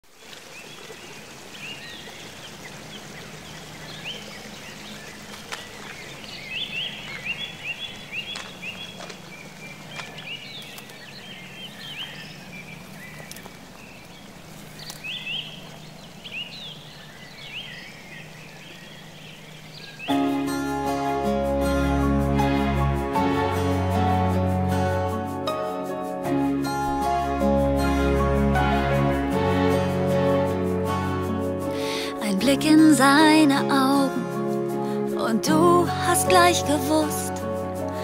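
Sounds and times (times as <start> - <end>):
stream rushing over rocks: 0.0 - 10.6
small birds chirping: 0.2 - 20.4.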